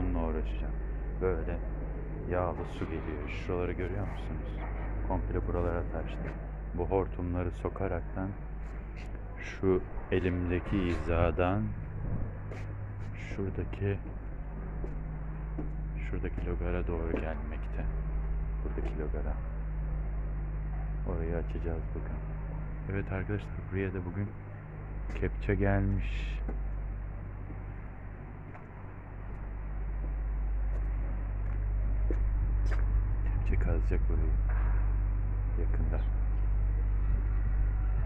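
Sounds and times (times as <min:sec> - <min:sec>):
excavator diesel engine running: 0:00.0 - 0:34.5
low mechanical hum: 0:00.0 - 0:38.0.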